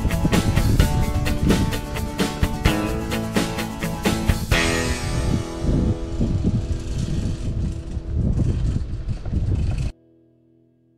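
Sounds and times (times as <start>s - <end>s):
wind buffeting microphone: 0.0s - 3.1s, 4.4s - 9.9s
guitar music: 0.0s - 9.2s, 9.9s - 10.9s.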